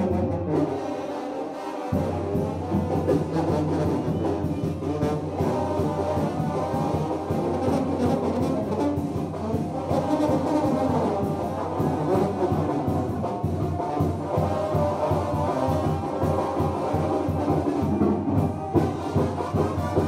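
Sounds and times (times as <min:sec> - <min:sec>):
brass band playing dance music: 0:00.0 - 0:20.0.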